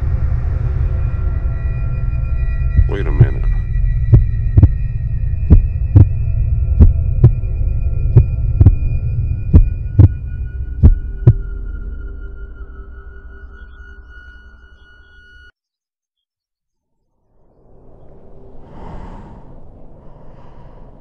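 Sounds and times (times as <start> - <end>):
low droning bass: 0.0 - 13.4
steady high tones: 2.1 - 11.4
heartbeat-style double thump: 2.8 - 6.2, 6.8 - 7.5, 8.1 - 8.9, 9.5 - 10.2, 10.8 - 11.4.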